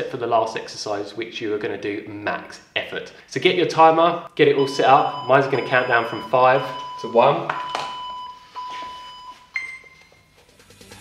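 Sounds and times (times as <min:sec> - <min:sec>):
interval timer beeping: 0:04.6 - 0:10.2.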